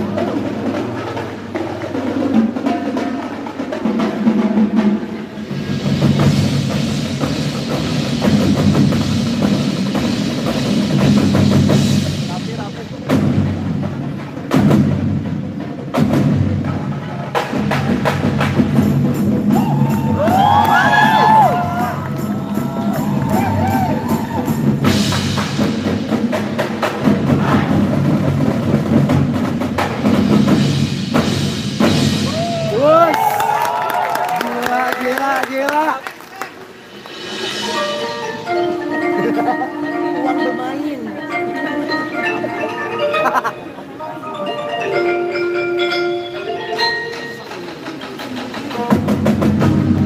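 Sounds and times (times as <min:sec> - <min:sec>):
drum and percussion hits: 0:00.0 - 0:34.3, 0:36.6 - 0:40.6, 0:44.7 - 0:50.0
marching band playing: 0:00.0 - 0:50.0.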